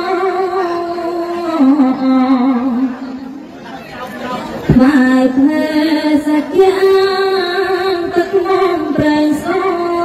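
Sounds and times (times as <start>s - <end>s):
woman's amplified voice: 0.0s - 3.4s, 4.7s - 10.0s
faint background chatter: 0.0s - 10.0s.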